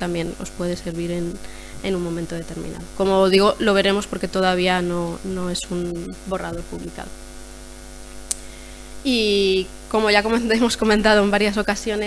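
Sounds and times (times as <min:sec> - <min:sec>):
electrical mains hum: 0:00.0 - 0:12.0
sharp click: 0:08.2 - 0:08.5.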